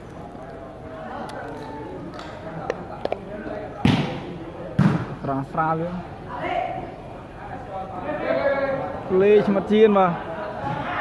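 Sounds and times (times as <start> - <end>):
spectators chatting: 0.0 - 11.0
volleyball struck by hand: 3.8 - 5.2.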